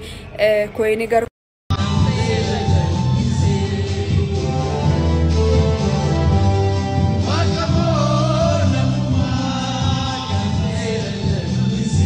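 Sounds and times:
person singing: 1.7 - 6.3, 7.1 - 12.0
held bass notes: 1.7 - 12.0.

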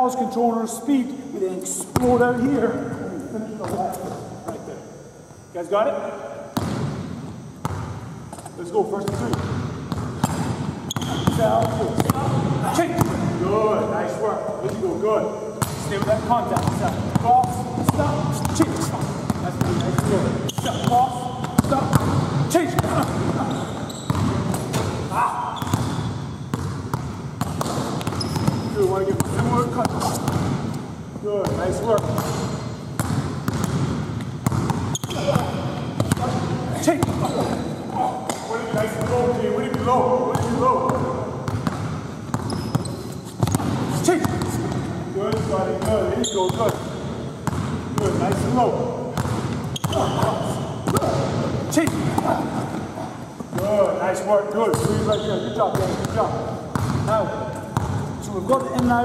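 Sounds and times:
basketball bouncing on wooden floor: 9.1 - 13.3, 15.6 - 25.0, 25.6 - 30.7, 31.4 - 37.7, 38.3 - 52.8, 54.7 - 57.1, 58.7 - 59.0
voices talking: 10.9 - 25.8.

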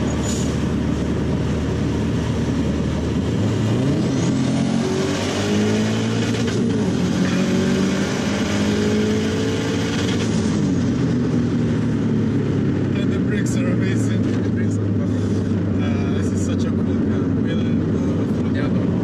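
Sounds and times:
car engine accelerating hard: 0.0 - 19.0.

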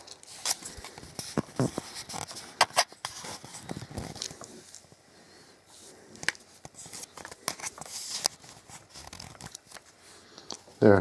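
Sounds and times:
phone handling clicks and rustles: 0.0 - 5.0, 6.2 - 10.7.

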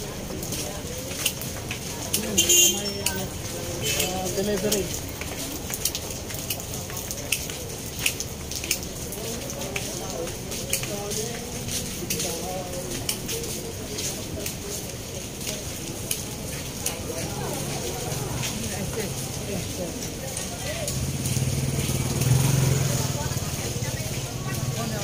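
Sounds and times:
background chatter: 0.0 - 25.0.

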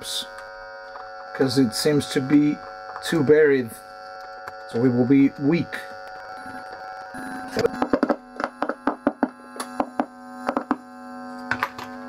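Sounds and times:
amp hum: 0.0 - 12.0.

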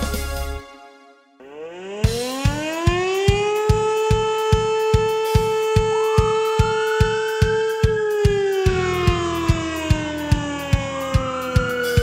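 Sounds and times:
alarm siren: 0.6 - 12.0
kick drum beat: 2.1 - 12.0.

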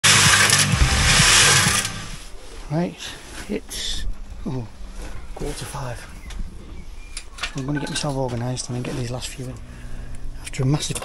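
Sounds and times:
machine hissing: 0.0 - 2.2
low hum: 0.0 - 2.4, 9.0 - 11.0.

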